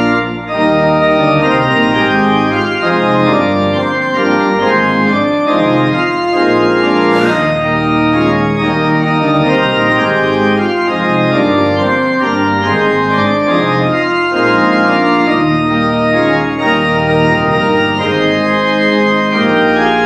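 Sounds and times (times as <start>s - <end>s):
church organ playing chords: 0.0s - 20.0s.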